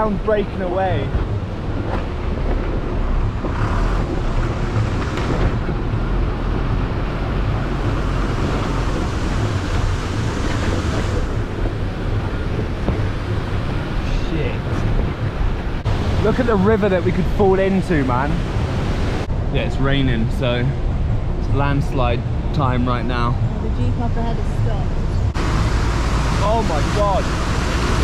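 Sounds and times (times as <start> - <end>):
bus engine rumble: 0.0 - 28.0
road noise: 0.0 - 28.0
wind buffeting microphone: 0.0 - 28.0.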